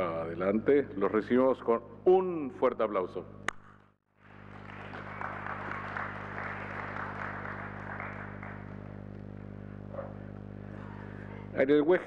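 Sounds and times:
low electrical hum: 0.0 - 12.0
audience applause: 4.2 - 9.2.

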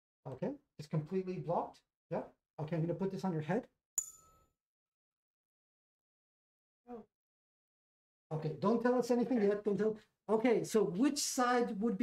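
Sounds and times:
tuning fork tap and ring: 4.0 - 4.5.

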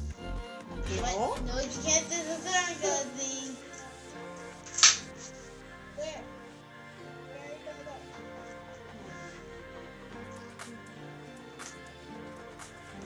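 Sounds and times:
upbeat background music: 0.0 - 13.0
child's wordless voice: 0.9 - 4.0, 6.0 - 6.3
sharp click: 4.7 - 5.0.

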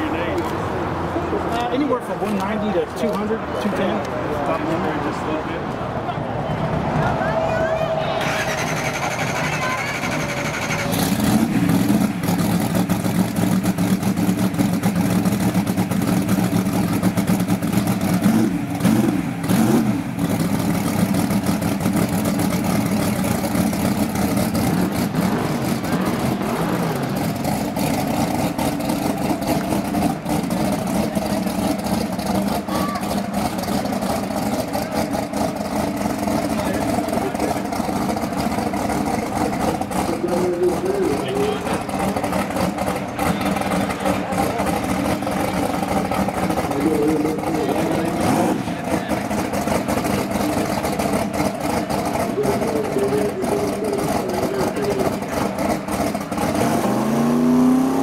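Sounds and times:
engine throttle blips: 6.1 - 58.0
car engine idling: 6.7 - 57.9.

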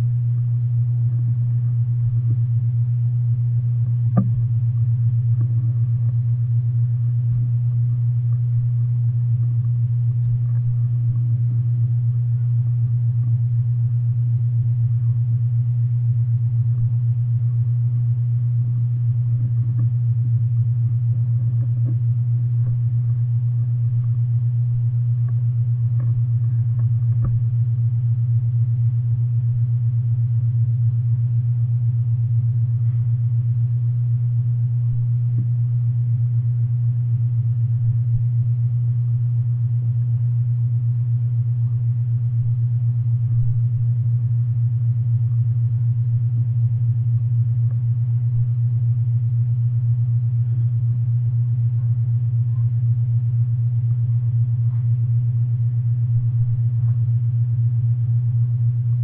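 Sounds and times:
loud steady low hum: 0.0 - 59.0.

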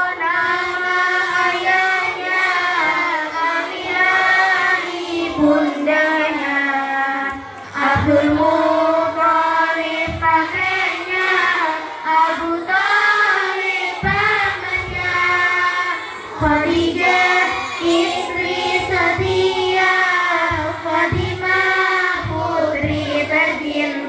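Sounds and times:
girls singing in unison: 0.0 - 24.0.

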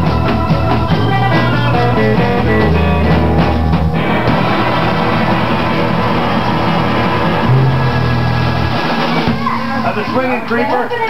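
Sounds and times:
electric guitar: 0.0 - 10.2
bass note ringing: 7.4 - 9.2
drum hits: 7.4 - 9.8.

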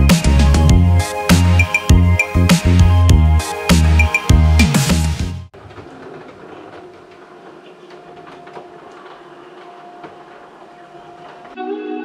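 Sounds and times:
music: 0.0 - 5.5, 11.6 - 12.0
roller shutter rattling: 5.5 - 11.6.

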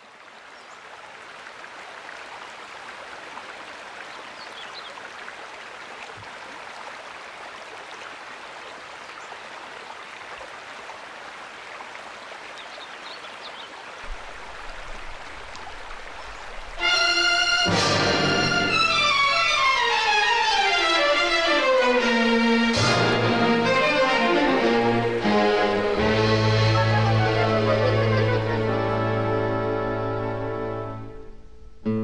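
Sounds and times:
waterfall splashing over rock: 0.0 - 21.2.

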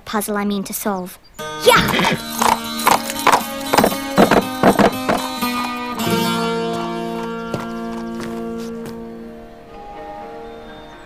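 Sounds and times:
background music with held chords: 1.4 - 11.0
horse hooves on stone paving: 1.6 - 9.0.

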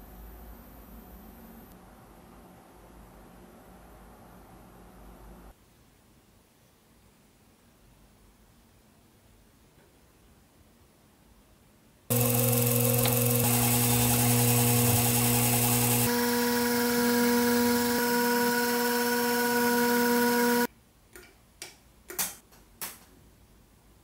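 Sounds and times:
drill press motor running: 12.1 - 20.7.

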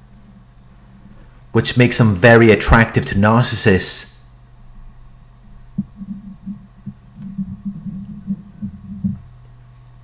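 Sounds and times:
steady hum: 0.0 - 10.0
low bass pulses: 5.0 - 9.6.

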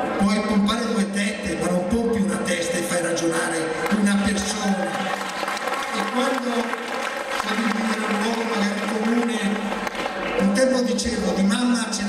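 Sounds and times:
man speaking through microphone: 0.0 - 5.2, 5.8 - 12.0
crowd applauding: 3.2 - 11.4.

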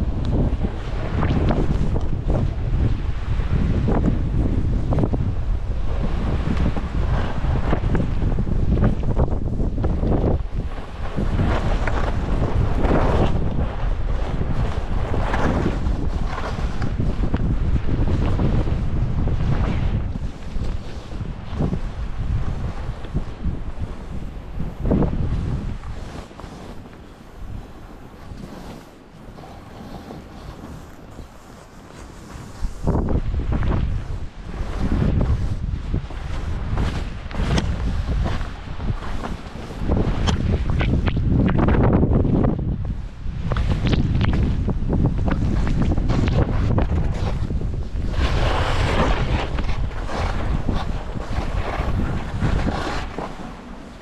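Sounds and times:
skis scraping over snow: 0.0 - 54.0
wind buffeting microphone: 0.0 - 54.0.

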